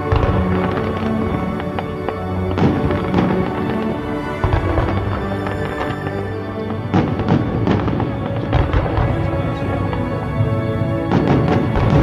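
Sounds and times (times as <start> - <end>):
background music: 0.0 - 12.0
fireworks bangs: 0.0 - 12.0.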